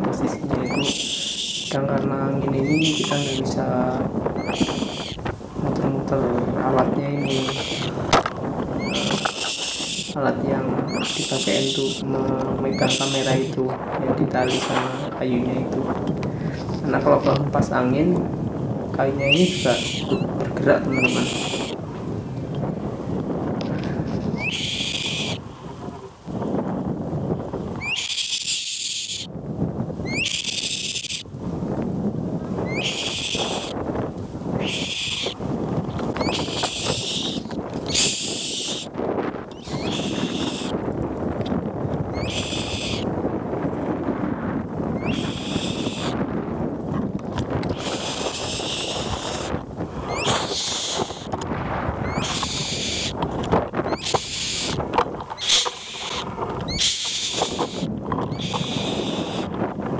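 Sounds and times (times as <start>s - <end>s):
leaves and branches rustling: 0.0s - 59.9s
wind buffeting microphone: 0.0s - 59.9s
high buzzing bursts: 0.6s - 1.8s, 8.8s - 10.2s, 50.1s - 51.3s, 55.4s - 59.5s.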